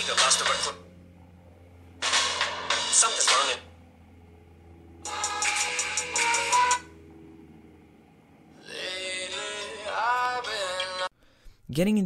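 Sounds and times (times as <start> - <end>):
music from a phone speaker: 0.0 - 1.0, 1.8 - 4.2, 5.0 - 7.5, 8.4 - 11.2.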